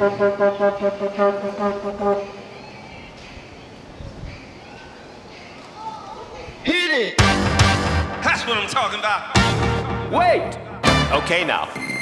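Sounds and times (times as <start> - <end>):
quiet street ambience: 0.0 - 7.2.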